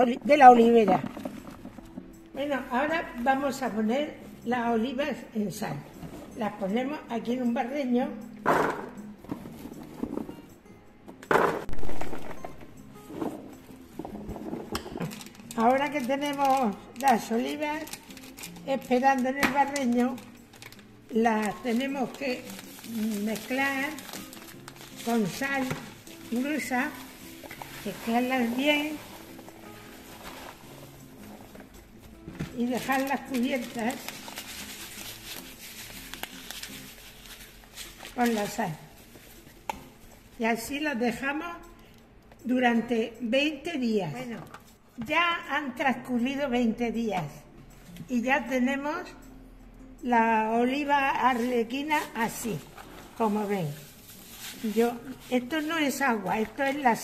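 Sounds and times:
olives pouring: 0:00.0 - 0:02.1, 0:21.6 - 0:31.6
faint background music: 0:00.0 - 0:57.0.

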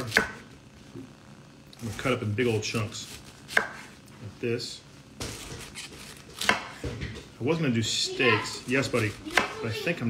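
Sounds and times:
knife cutting cauliflower: 0:02.8 - 0:04.0.

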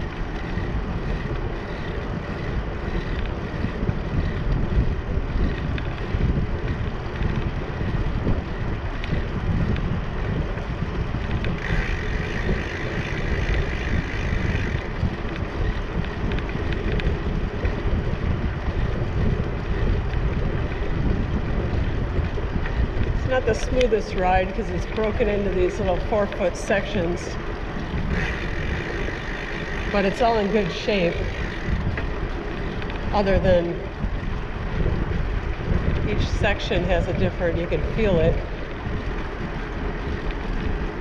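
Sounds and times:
bicycle tyres rolling on concrete: 0:00.0 - 0:41.0
wind buffeting microphone: 0:00.0 - 0:41.0.

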